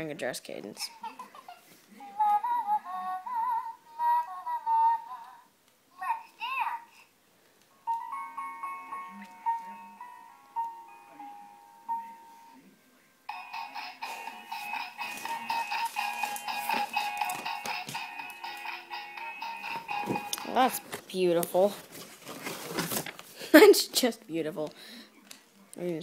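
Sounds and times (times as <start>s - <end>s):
electronic toy music: 13.3s - 20.9s.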